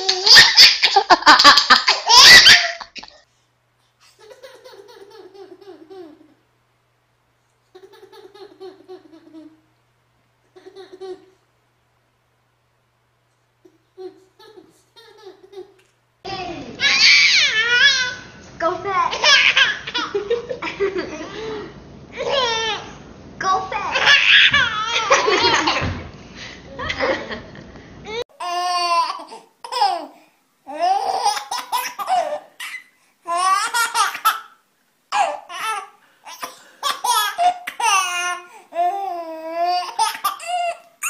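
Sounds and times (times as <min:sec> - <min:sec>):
baby laughing: 0:00.0 - 0:03.2, 0:04.0 - 0:06.4, 0:07.7 - 0:09.6, 0:13.7 - 0:15.9, 0:19.1 - 0:21.5, 0:23.8 - 0:25.9, 0:28.1 - 0:41.0.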